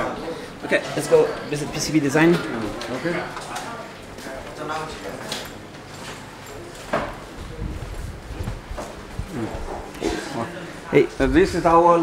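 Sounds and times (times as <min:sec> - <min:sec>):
faint voices: 0:00.0 - 0:11.8
footsteps on tiled floor: 0:05.6 - 0:09.9.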